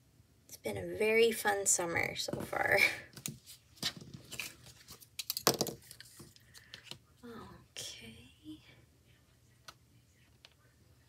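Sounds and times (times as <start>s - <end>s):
person whispering: 7.2s - 9.5s.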